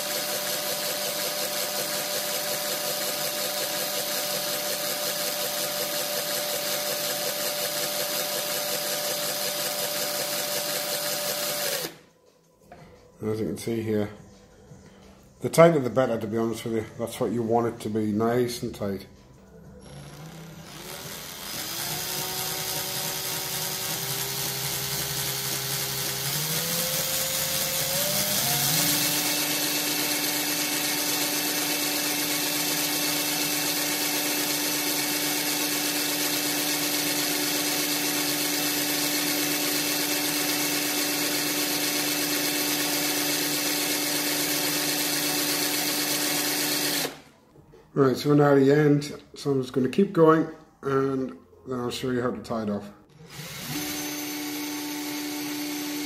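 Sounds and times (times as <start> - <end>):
electric drill motor whine: 0.0 - 12.1, 19.6 - 47.3, 53.2 - 56.0.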